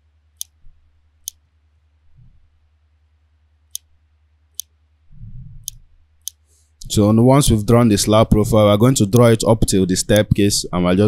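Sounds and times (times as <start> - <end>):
faint low hum: 0.0 - 11.0
soft low rustle: 2.0 - 2.7, 5.1 - 6.8.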